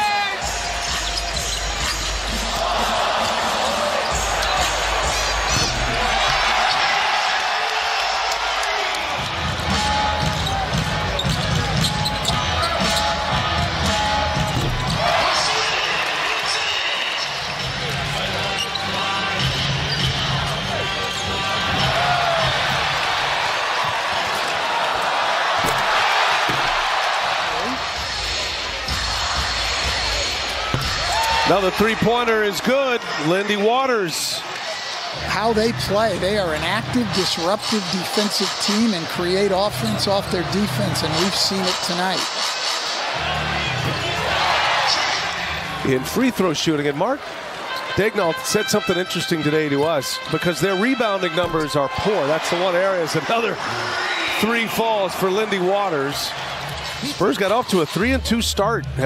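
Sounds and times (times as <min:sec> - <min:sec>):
crowd din: 0:00.0 - 0:59.0
basketball bouncing on court: 0:14.4 - 0:15.1, 0:25.6 - 0:27.1, 0:30.6 - 0:31.1.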